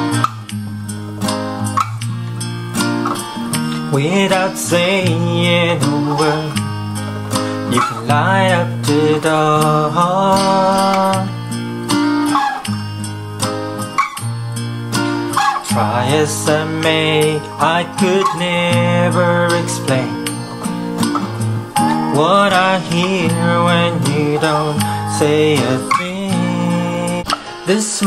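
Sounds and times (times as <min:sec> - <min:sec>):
acoustic guitar strummed: 0:00.0 - 0:28.0
person singing: 0:03.3 - 0:11.5, 0:15.4 - 0:20.8, 0:21.7 - 0:28.0.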